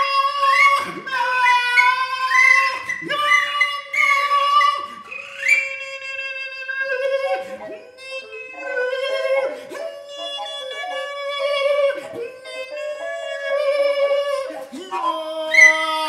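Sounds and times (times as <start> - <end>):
voice sliding in pitch: 0.0 - 16.0
recorder held tone: 4.8 - 15.9.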